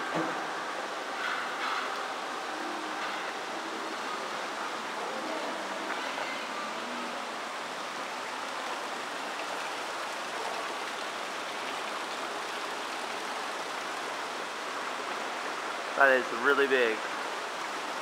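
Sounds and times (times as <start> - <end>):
fountain water splashing: 0.0 - 18.0.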